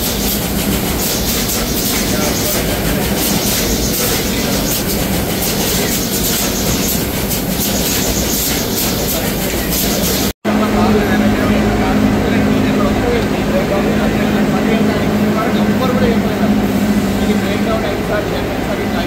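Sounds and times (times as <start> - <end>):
food-processing machinery running: 0.0 - 19.0.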